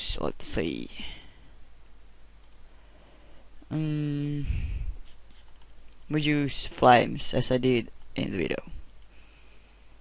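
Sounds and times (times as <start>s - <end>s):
low steady hiss: 0.0s - 10.0s
computer mouse clicks: 2.4s - 2.6s, 5.3s - 6.0s.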